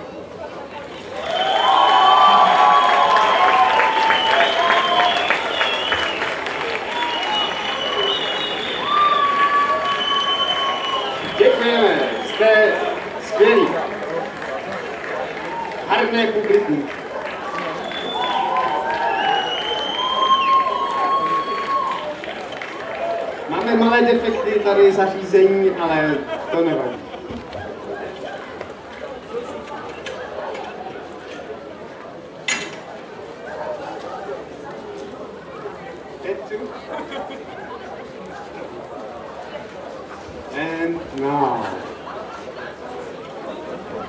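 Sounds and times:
murmur of voices: 0.0 - 44.0
audience applause: 1.2 - 24.4
high whistling tone: 6.9 - 11.4.

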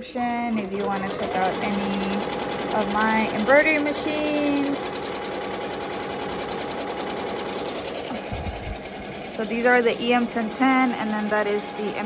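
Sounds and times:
embroidery machine stitching: 0.0 - 12.0.

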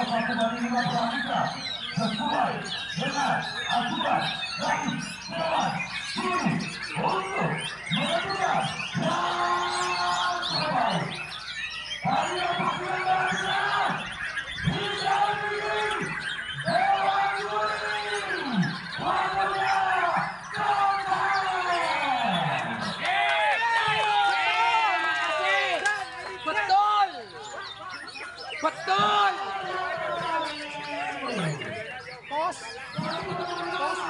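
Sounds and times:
birds singing: 0.0 - 34.0
people shouting drawn-out calls: 0.0 - 34.0.

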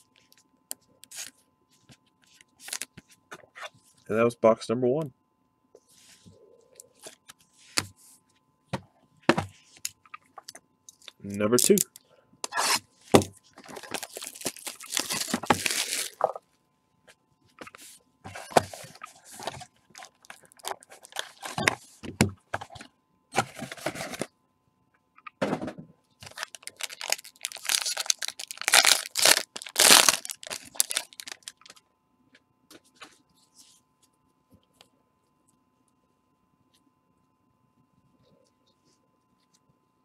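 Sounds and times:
wrapper and cardboard tearing: 13.6 - 16.4, 20.0 - 21.7, 26.2 - 31.7.

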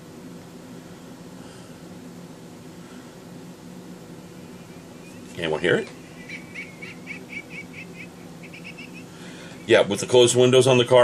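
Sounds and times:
faint high chirping: 4.3 - 10.1.

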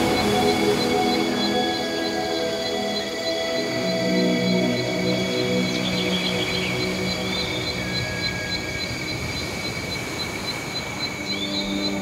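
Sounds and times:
ambient music drone: 0.0 - 12.0
high pulsing like crickets: 0.0 - 12.0.

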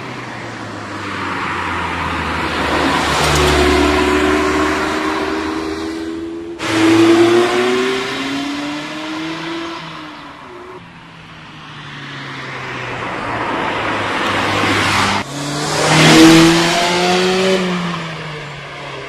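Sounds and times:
car engine revving: 2.1 - 10.8, 13.6 - 18.8.

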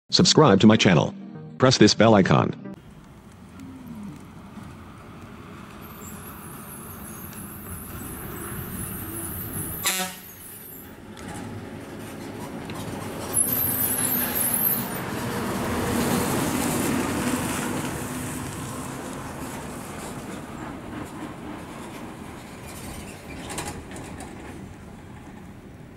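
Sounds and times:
bus diesel engine running: 2.8 - 22.3
bus horn toot: 9.4 - 10.5.

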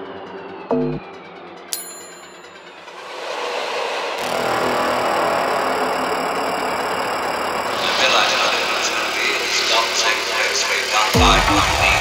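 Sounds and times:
trance music: 0.0 - 12.0.

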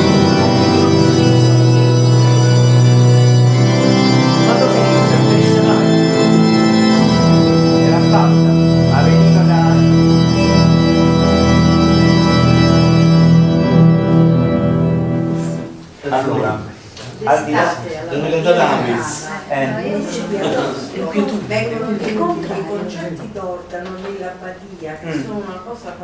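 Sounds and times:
pipe organ chords: 0.0 - 15.9.

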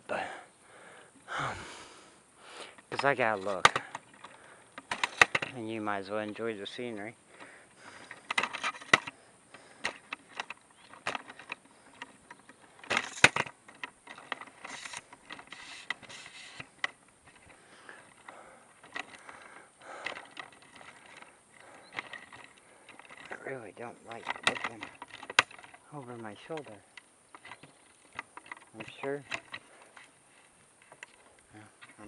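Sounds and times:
camera tripod handling noise: 8.0 - 18.2.

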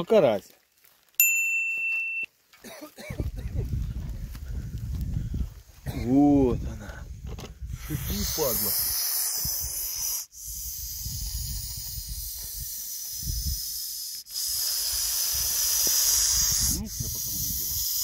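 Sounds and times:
snake hissing: 7.7 - 18.0.

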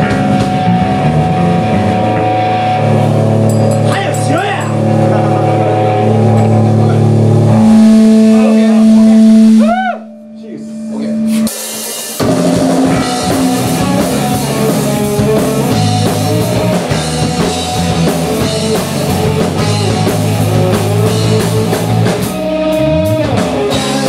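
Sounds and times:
rock band sustained chords: 0.0 - 24.0.

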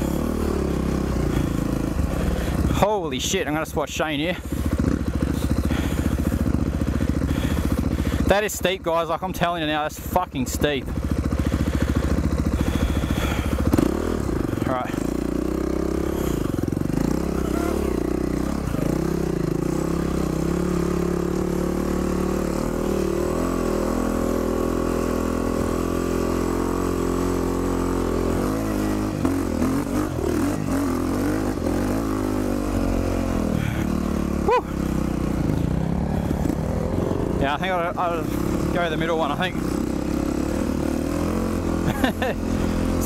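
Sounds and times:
dirt bike engine idling: 0.0 - 43.0.

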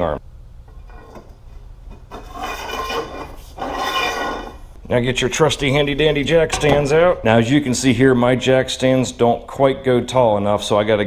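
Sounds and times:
metal pipe scraping: 0.7 - 4.8.

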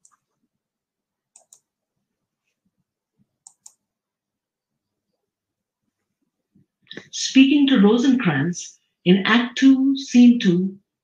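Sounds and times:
computer mouse clicks: 0.0 - 0.4, 1.3 - 1.7, 3.4 - 3.9.

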